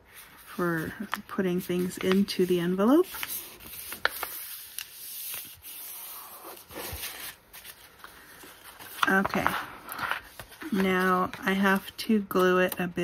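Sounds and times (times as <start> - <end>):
hands rustling paper: 0.1 - 12.8.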